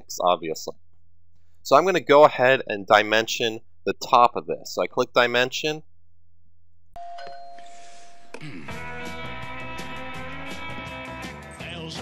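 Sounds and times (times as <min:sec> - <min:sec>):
chime-like ringing tone: 0:07.0 - 0:08.4.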